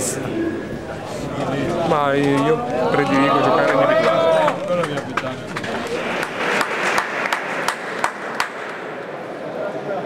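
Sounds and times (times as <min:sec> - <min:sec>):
murmur of voices: 0:00.0 - 0:07.2, 0:08.8 - 0:10.0.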